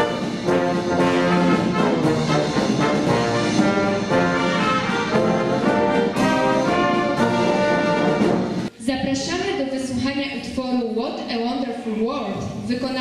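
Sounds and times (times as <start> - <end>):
brass band playing a march: 0.0 - 8.7.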